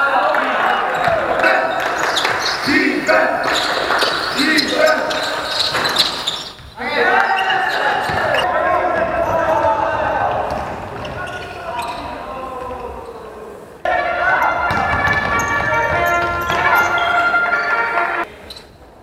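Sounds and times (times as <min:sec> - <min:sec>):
players' voices echoing: 0:00.0 - 0:19.0
basketball bouncing on court: 0:07.9 - 0:12.0, 0:14.5 - 0:17.2.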